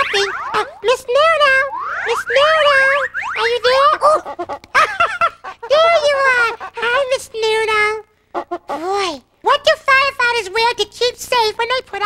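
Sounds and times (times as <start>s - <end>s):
cartoon boing sound effects: 0.0s - 0.8s.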